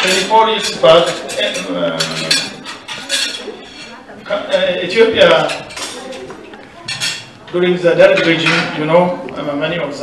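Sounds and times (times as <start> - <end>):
cutlery and dishes clinking: 0.0 - 8.9.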